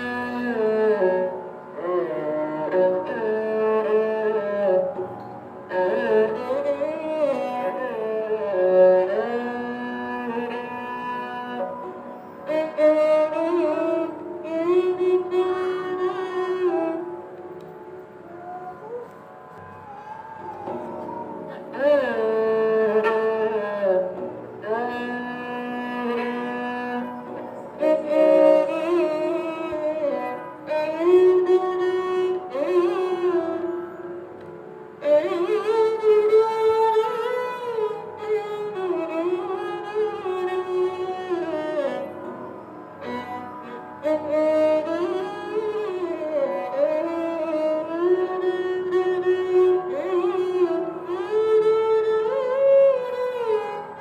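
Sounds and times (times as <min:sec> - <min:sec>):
bowed sarangi melody: 0:00.0 - 0:54.0.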